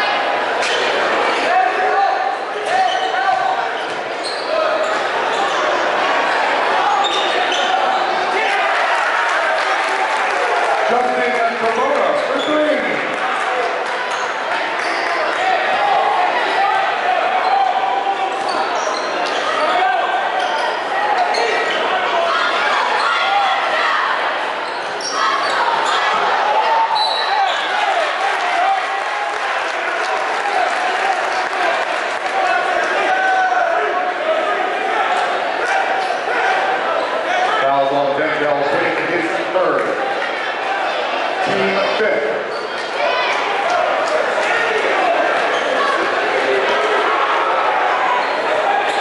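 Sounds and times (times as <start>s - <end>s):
crowd voices echoing: 0.0s - 49.0s
sneakers squeaking on court: 3.8s - 5.7s, 7.0s - 8.1s, 18.5s - 19.6s, 24.6s - 26.2s, 42.5s - 42.9s.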